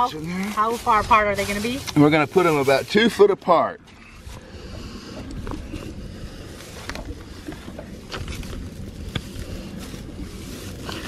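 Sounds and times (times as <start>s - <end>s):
feet rustling in dry straw: 0.0s - 3.2s, 7.6s - 11.0s
wind rumble on microphone: 4.0s - 11.0s.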